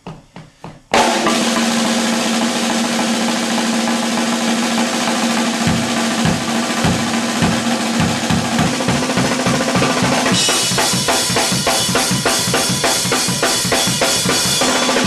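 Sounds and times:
ringing drum tone: 0:00.1 - 0:15.0
drum kit played hard: 0:00.3 - 0:15.0
bass drum strokes: 0:05.0 - 0:11.1.

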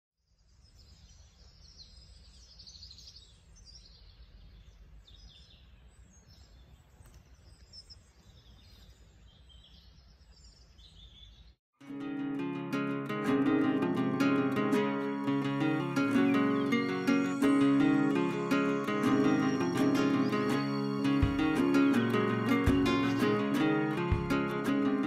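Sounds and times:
small birds chirping: 0:00.2 - 0:11.6, 0:14.4 - 0:25.0.

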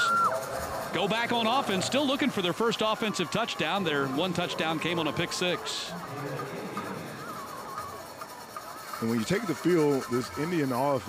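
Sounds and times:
stadium background sound: 0:00.0 - 0:11.0.

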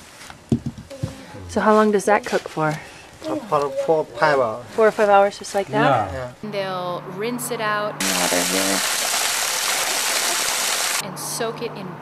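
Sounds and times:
water pouring onto concrete: 0:08.0 - 0:11.0.

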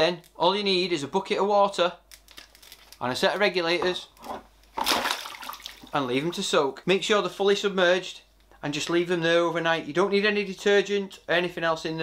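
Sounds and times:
splash into tub of water: 0:04.8 - 0:06.0.

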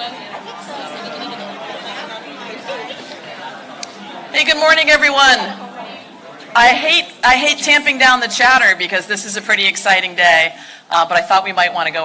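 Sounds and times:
audience chatter: 0:00.0 - 0:10.6.

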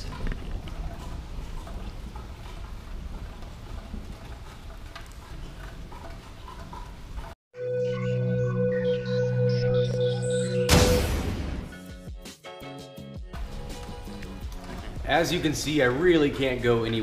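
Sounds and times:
intro music with held tones: 0:07.6 - 0:14.4.

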